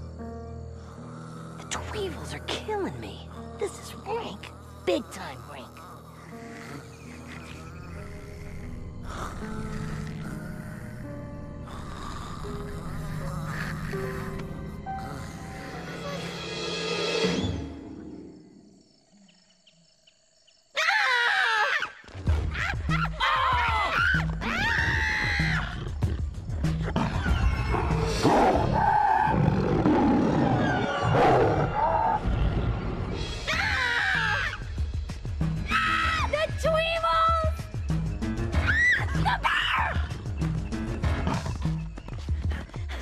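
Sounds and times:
cartoon soundtrack music: 30.1s - 41.9s.

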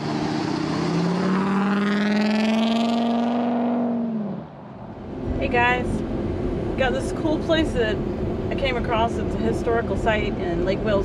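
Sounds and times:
truck engine accelerating: 0.0s - 11.0s.

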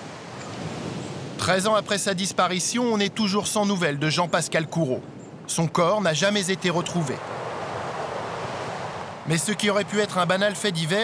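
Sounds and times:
sea surf breaking on shore: 0.0s - 4.6s, 5.7s - 11.0s.

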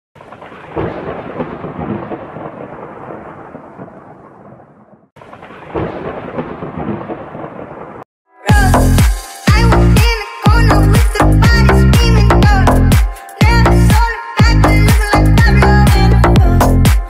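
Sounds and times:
rain: 0.2s - 4.6s
rolling thunder: 0.3s - 8.0s.

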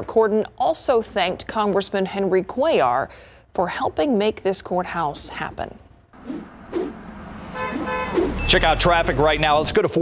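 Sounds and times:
car horn honking: 7.1s - 9.6s.

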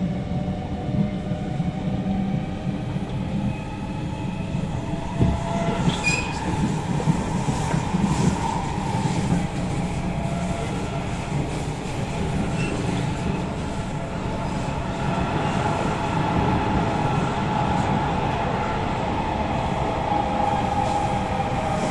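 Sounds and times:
train wheels rumbling on rail: 0.0s - 21.9s
knock: 5.2s - 5.5s
high wheel squeal: 5.8s - 6.6s.

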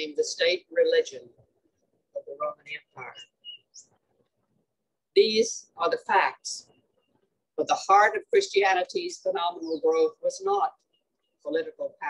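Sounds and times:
person speaking: 2.1s - 3.9s
high bird chirps: 2.8s - 4.0s.

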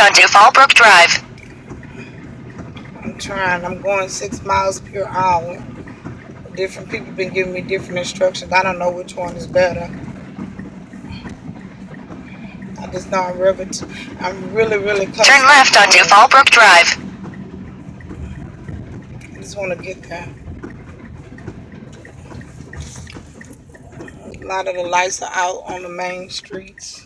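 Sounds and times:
car engine running: 0.0s - 27.0s
turn signal ticking: 0.0s - 27.0s
water washing under car: 1.3s - 15.2s, 17.0s - 27.0s.

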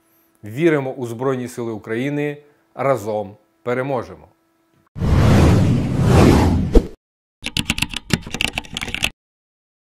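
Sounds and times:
keyboard key clicks: 7.4s - 9.1s.

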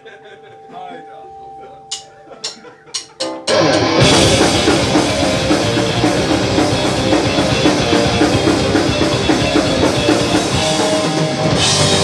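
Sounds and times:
guitar amplifier tone: 0.0s - 12.0s
drumstick clicks: 1.9s - 3.6s.

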